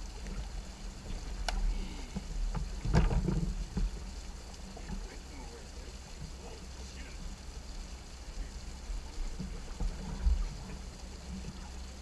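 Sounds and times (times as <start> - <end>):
wind noise: 0.0 - 5.1, 8.8 - 11.8
water noise: 0.0 - 12.0
knocks and thumps against boat: 0.2 - 4.1, 9.2 - 11.7.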